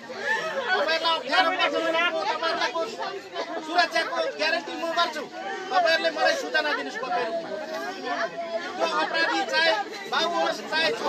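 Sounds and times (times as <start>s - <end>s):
voices chattering: 0.0s - 11.0s
man talking to crowd: 0.7s - 7.6s, 8.8s - 11.0s.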